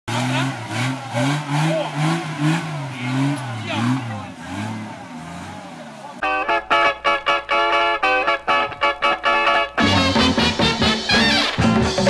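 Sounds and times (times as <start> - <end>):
off-road engine revving: 0.1 - 7.5.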